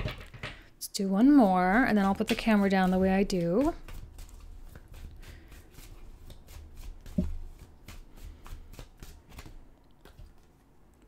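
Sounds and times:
cards being shuffled: 1.9s - 10.5s.

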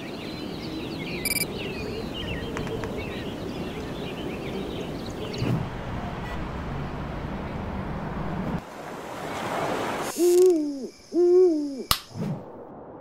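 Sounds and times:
owl hooting: 10.1s - 12.0s
sharp click: 11.9s - 12.1s.

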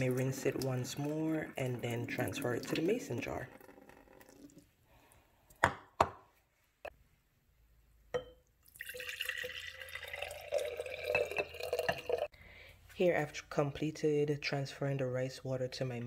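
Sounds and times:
water pouring into a glass jar: 0.0s - 4.7s, 8.6s - 12.3s.

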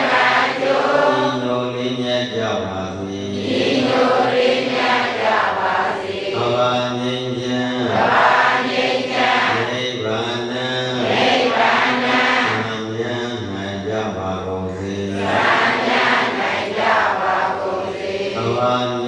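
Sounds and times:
man chanting: 0.6s - 4.4s, 6.3s - 8.3s, 9.0s - 15.6s, 18.3s - 19.0s.

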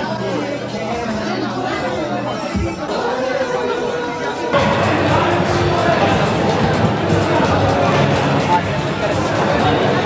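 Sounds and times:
background music: 0.0s - 10.0s
crowd noise: 0.0s - 10.0s
voices chattering: 0.0s - 10.0s.

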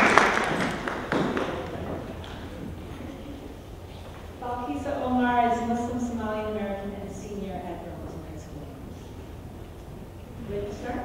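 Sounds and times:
audience clapping: 0.0s - 2.8s.

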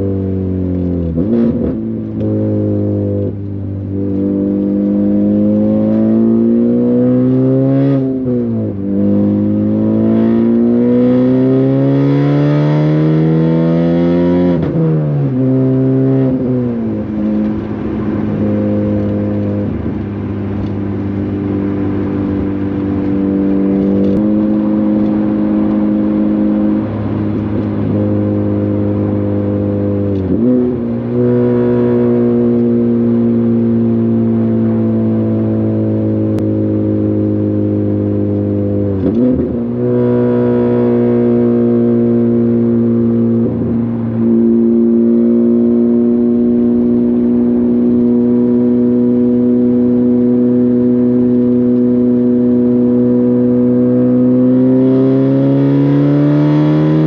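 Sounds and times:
loud steady exhaust drone: 14.6s - 37.5s.

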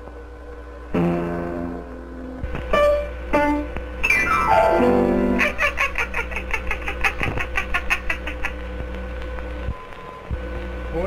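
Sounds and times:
faint film soundtrack hum: 0.0s - 11.0s
cartoon high-pitched staccato laugh: 5.3s - 8.6s.

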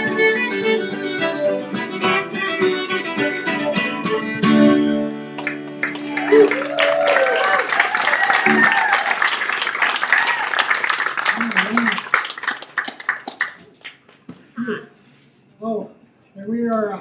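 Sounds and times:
band chord on guitar and fiddles: 0.0s - 5.9s
audience applauding and cheering: 5.4s - 14.0s.

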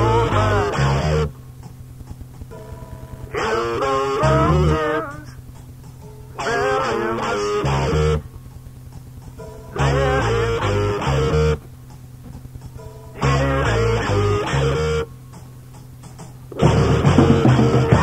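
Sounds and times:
rock guitar riff: 0.0s - 1.3s, 2.5s - 5.4s, 6.3s - 8.4s, 9.6s - 11.6s, 13.0s - 15.1s, 16.5s - 18.0s
low bass notes: 0.0s - 1.4s, 7.6s - 8.4s, 9.7s - 11.6s, 13.1s - 15.1s, 16.5s - 18.0s.

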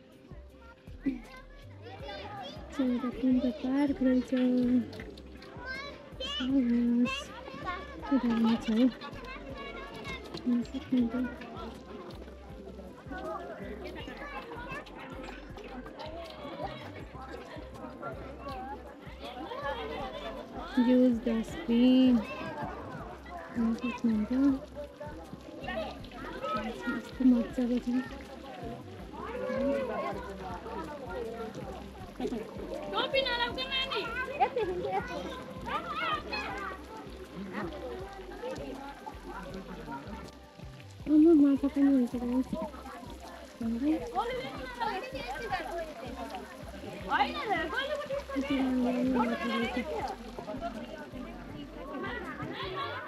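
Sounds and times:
children chattering and calling: 0.0s - 53.0s
people talking in background: 0.0s - 53.0s.

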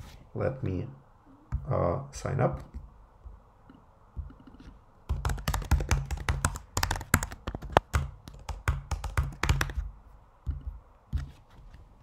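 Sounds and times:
typing on computer keyboard: 5.1s - 9.8s.

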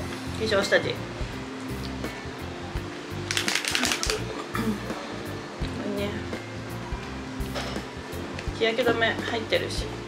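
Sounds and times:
background music: 0.0s - 10.0s
plastic tube clicking: 3.3s - 4.2s.

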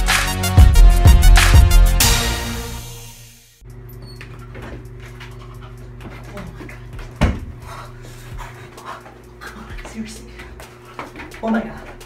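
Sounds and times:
intro music: 0.0s - 3.8s
steady low hum: 3.7s - 12.0s
man breathing heavily: 5.2s - 12.0s.

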